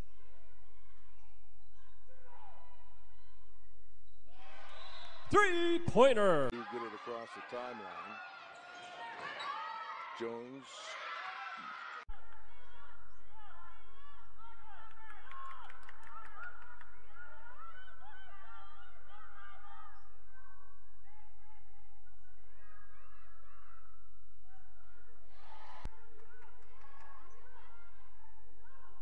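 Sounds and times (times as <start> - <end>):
basketball court noise: 4.3 - 12.0
crowd voices: 4.4 - 12.9.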